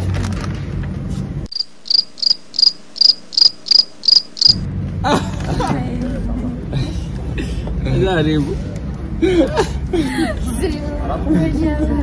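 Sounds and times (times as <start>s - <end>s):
cricket chirping: 1.5s - 4.6s.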